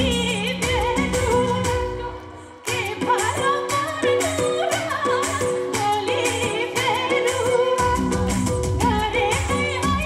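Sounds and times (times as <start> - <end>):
keyboard and percussion backing: 0.0 - 10.0
woman singing into microphone: 0.0 - 10.0.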